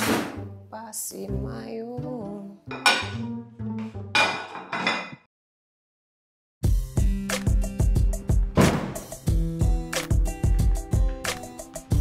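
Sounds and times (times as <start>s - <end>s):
kitchenware clanking: 2.7s - 3.2s, 4.1s - 5.3s.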